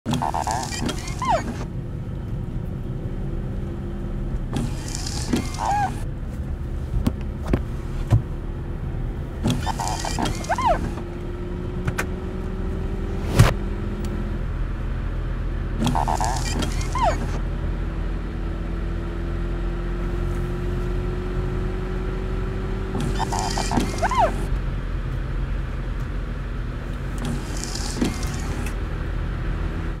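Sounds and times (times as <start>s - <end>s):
windshield wipers swishing and squeaking: 0.0s - 1.7s, 4.5s - 6.1s, 9.4s - 11.2s, 15.8s - 17.4s, 22.9s - 24.5s, 27.0s - 28.8s
low car cabin rumble: 0.0s - 18.4s, 19.7s - 30.0s.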